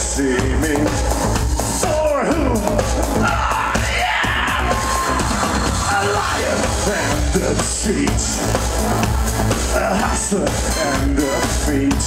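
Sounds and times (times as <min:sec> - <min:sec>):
loud live electronic music: 0:00.0 - 0:12.0.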